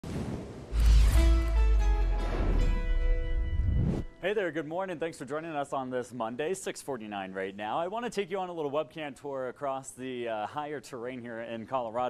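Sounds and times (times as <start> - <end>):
news intro music with deep bass: 0.8 - 4.2.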